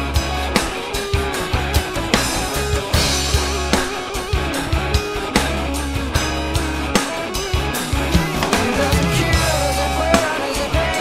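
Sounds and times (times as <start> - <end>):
drum kit steady beat: 0.0 - 11.0
rock music with guitar and bass: 0.0 - 11.0.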